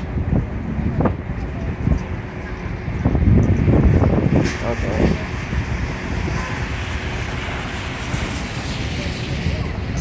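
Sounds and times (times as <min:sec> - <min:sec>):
traffic on a wet street: 0:00.0 - 0:10.0.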